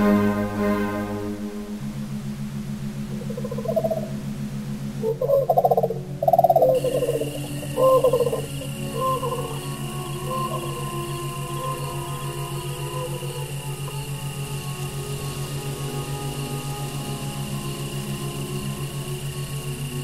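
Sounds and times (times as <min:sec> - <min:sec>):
high steady tone: 0:00.0 - 0:20.0
pulsing low drone: 0:00.0 - 0:20.0
short warbling calls: 0:03.0 - 0:19.7.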